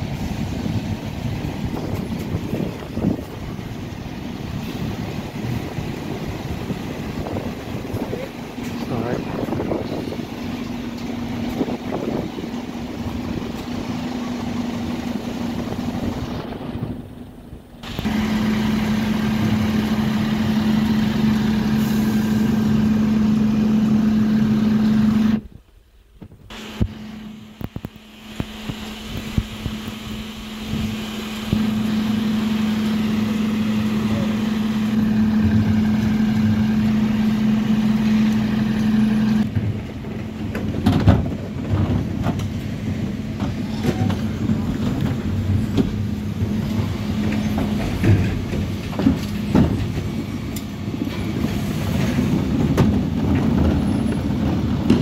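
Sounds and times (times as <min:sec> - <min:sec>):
lorry engine and hydraulics humming: 0:00.0 - 0:55.0.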